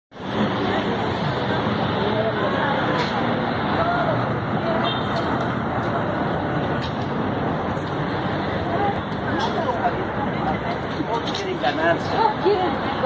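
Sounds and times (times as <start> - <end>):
traffic rushing: 0.1 - 13.0
people talking: 8.5 - 13.0.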